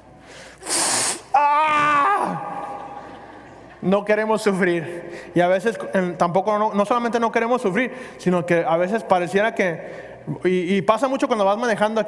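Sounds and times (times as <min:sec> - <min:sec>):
man hissing breath: 0:00.2 - 0:01.4
man groaning: 0:01.3 - 0:02.8.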